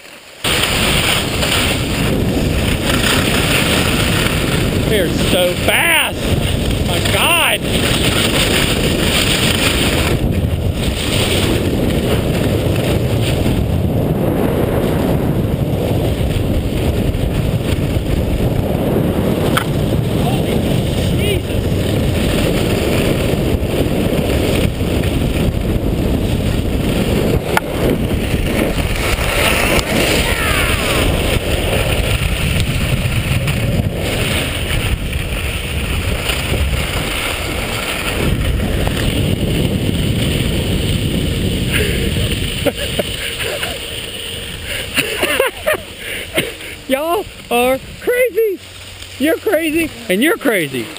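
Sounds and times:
skis hissing over snow: 0:00.0 - 0:17.9, 0:19.8 - 0:50.9
wind buffeting microphone: 0:00.4 - 0:50.9.

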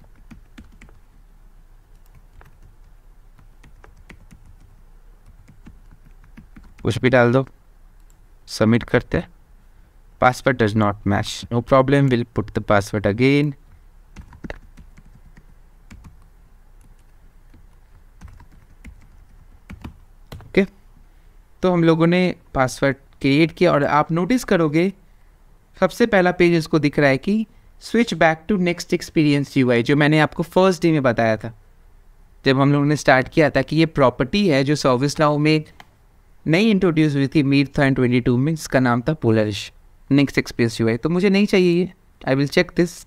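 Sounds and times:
computer keyboard keystrokes: 0:00.0 - 0:01.0, 0:01.9 - 0:06.8, 0:14.2 - 0:20.5.

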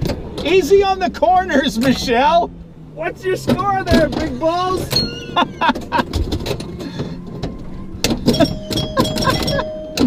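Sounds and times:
van road rumble: 0:00.0 - 0:10.0
pinball flippers and bumpers clacking: 0:03.4 - 0:10.0.

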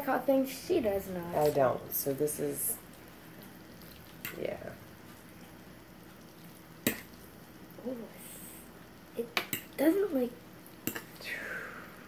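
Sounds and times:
fork stirring noodles in bowl: 0:02.9 - 0:05.5.

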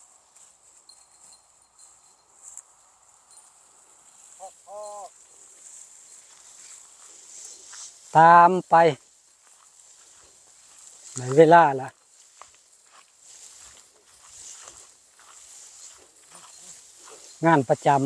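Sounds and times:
faint rustling: 0:00.0 - 0:08.2, 0:09.0 - 0:17.9
person shouting to cattle: 0:04.4 - 0:05.1.

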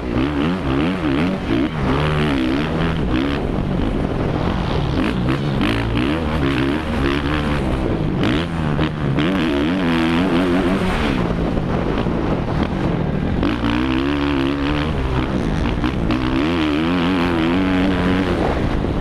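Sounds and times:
motocross bike engine revving: 0:00.0 - 0:19.0.

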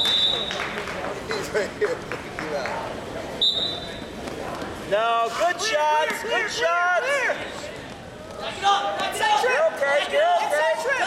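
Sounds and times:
man shouting: 0:05.3 - 0:07.4, 0:08.4 - 0:11.0.

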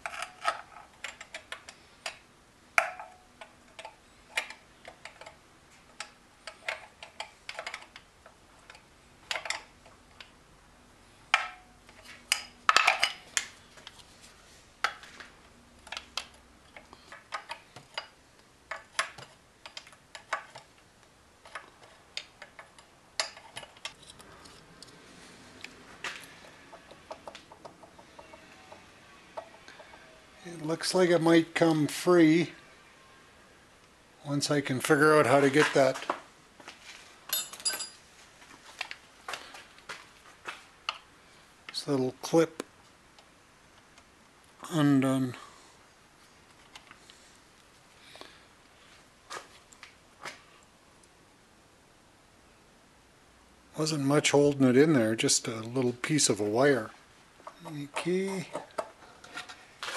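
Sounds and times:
hand tools clinking on metal: 0:37.3 - 0:38.0.

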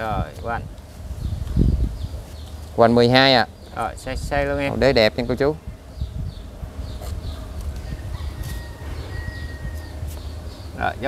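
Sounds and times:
birds chirping: 0:00.0 - 0:11.0
steady low rumble: 0:00.0 - 0:11.0
thin steady whine: 0:00.0 - 0:11.0.

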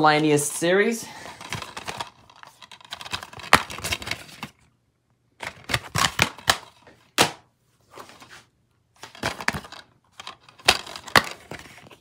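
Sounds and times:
plastic cases clacking: 0:01.2 - 0:04.6, 0:05.4 - 0:07.4, 0:09.0 - 0:12.0.

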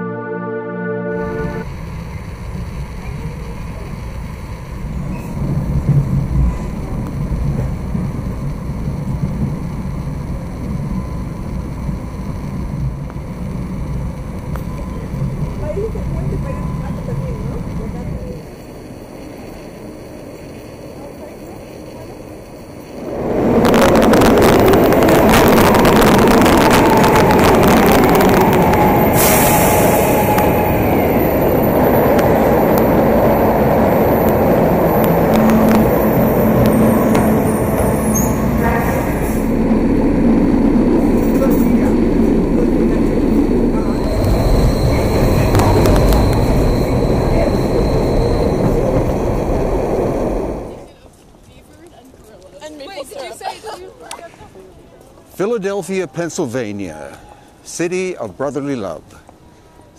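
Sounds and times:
station hall hum: 0:00.0 - 0:04.9, 0:22.9 - 0:50.9
train rumble inside carriage: 0:01.2 - 0:51.0
high squeals: 0:22.6 - 0:50.9.

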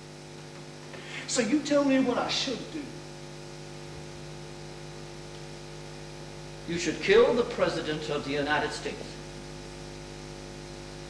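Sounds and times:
steady electrical hum: 0:00.0 - 0:11.0.

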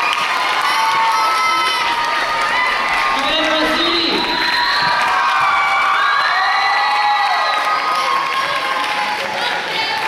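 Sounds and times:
teenagers cheering and screaming: 0:00.0 - 0:10.0.

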